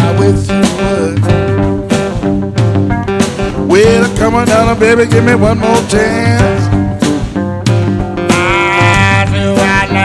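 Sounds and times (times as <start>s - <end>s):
live blues band playing: 0.0s - 10.0s
sliding lead guitar line: 0.0s - 10.0s.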